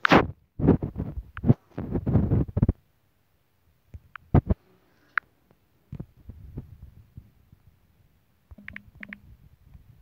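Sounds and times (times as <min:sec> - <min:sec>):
fingers tapping touchscreen: 0:08.5 - 0:09.3.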